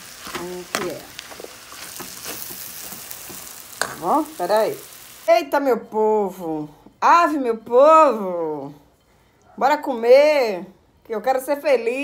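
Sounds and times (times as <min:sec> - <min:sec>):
food sizzling in a pan: 0:00.0 - 0:05.6.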